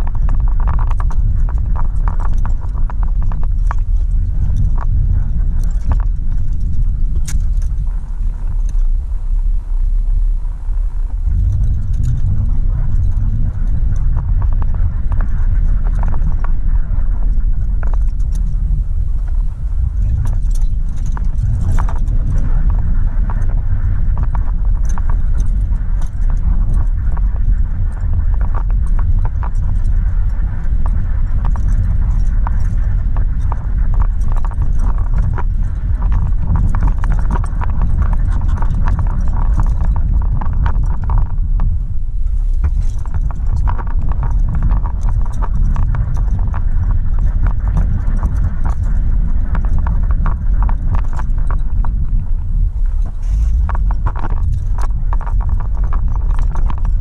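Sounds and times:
small clicks and knocks: 0.0s - 8.9s, 11.3s - 57.0s
car road and engine rumble: 0.0s - 57.0s.

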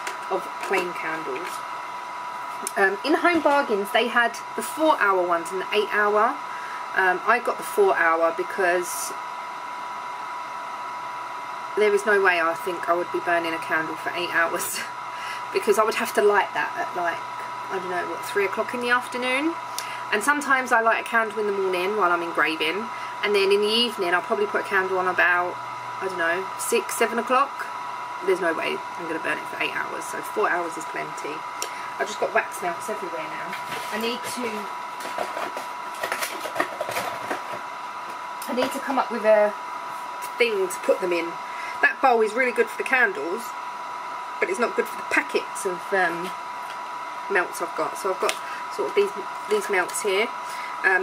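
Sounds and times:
faint high hum: 0.0s - 51.0s
fan-like hiss: 0.0s - 51.0s
objects rustling and clicking: 35.0s - 37.6s.

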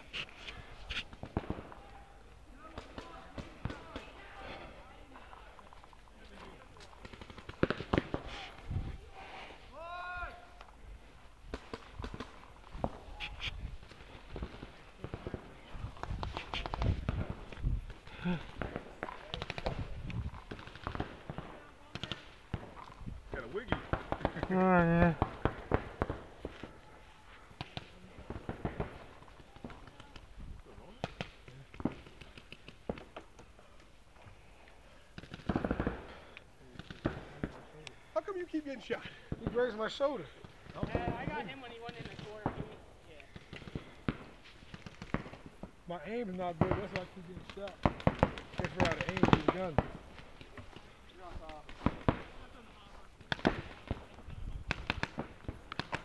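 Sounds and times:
paintball markers firing: 2.6s - 4.4s, 6.4s - 8.6s, 11.4s - 26.7s, 30.9s - 33.9s, 46.4s - 56.0s.

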